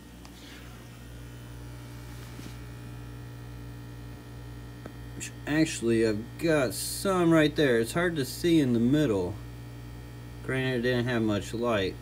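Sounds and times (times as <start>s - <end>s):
electrical mains hum: 0.0s - 12.0s.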